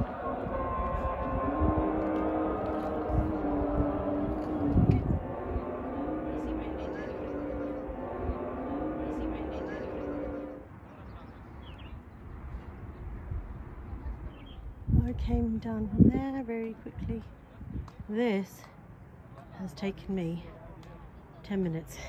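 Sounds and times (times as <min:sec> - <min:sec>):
wind rumble on microphone: 0:00.0 - 0:09.6, 0:11.8 - 0:18.2
person chanting long held notes: 0:00.0 - 0:10.7.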